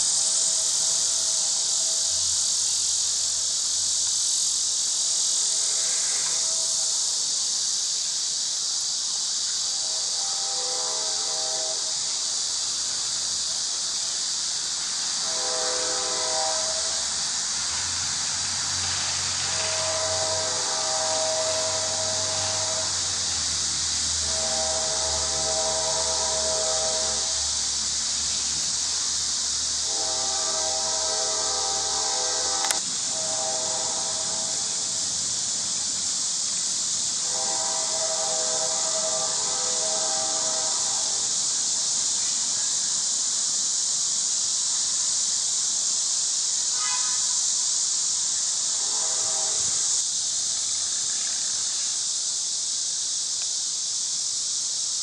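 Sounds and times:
insect chorus: 0.0s - 55.0s.

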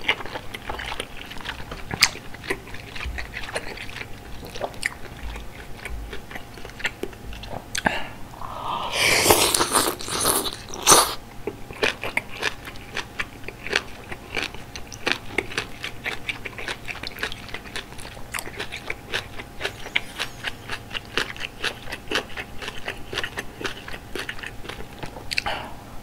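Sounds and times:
chewing with crisp crunching: 0.0s - 8.0s, 9.0s - 25.5s
loud slurp: 8.7s - 11.2s.

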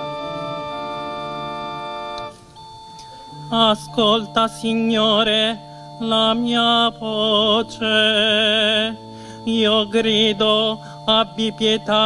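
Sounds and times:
organ chords: 0.0s - 12.0s
person singing psalm: 3.5s - 12.0s.

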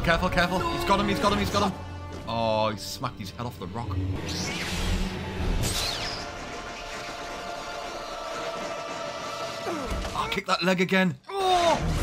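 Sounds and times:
soundtrack music: 0.0s - 10.3s.

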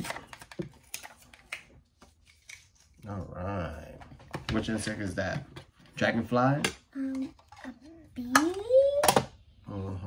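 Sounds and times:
cards and paper being handled: 0.0s - 3.2s.

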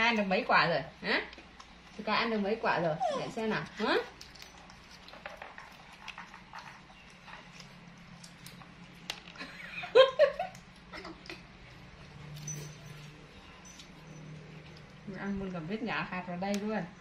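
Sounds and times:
monkeys biting fruit clicks: 4.1s - 9.5s.

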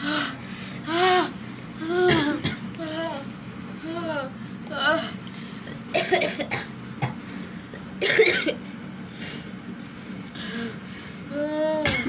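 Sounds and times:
short hard cough: 8.0s - 8.6s.

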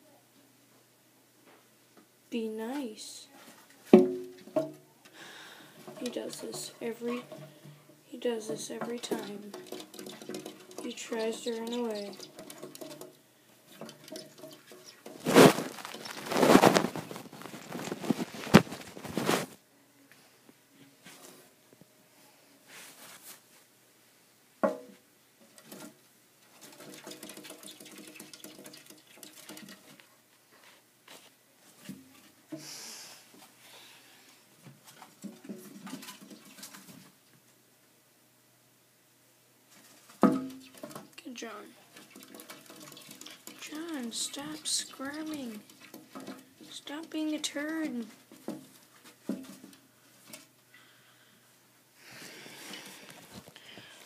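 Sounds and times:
loud rustling and scraping: 13.7s - 19.6s.

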